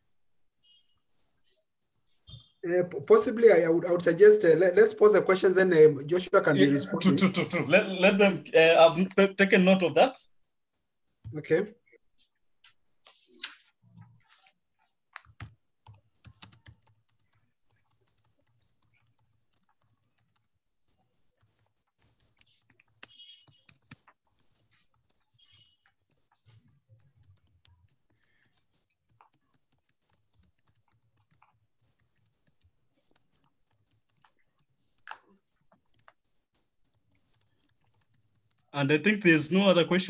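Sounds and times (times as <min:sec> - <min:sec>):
keyboard typing: 0:12.2 - 0:40.0.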